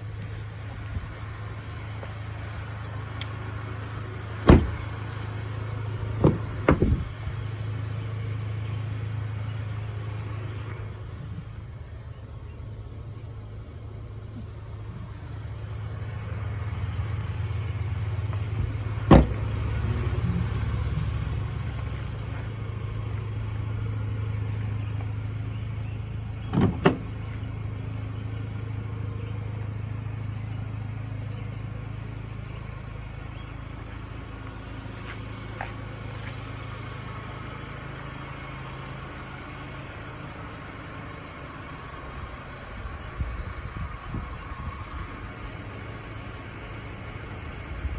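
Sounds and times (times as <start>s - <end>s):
engine idling: 0.0s - 47.9s
sharp thump: 4.5s - 4.8s, 19.1s - 19.4s.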